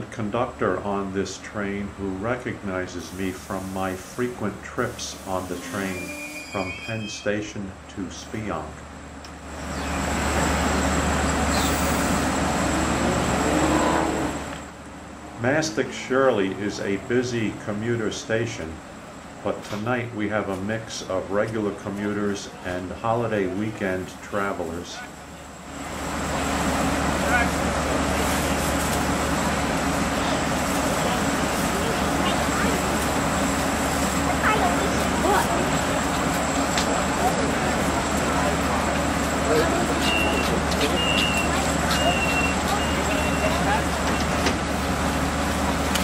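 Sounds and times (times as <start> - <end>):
diesel train engine droning: 0.0 - 46.0
pneumatic air hiss from train: 3.0 - 7.1.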